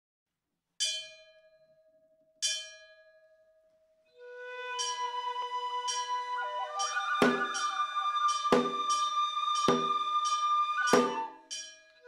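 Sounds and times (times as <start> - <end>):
bell-like chime ringing: 5.8 - 12.0.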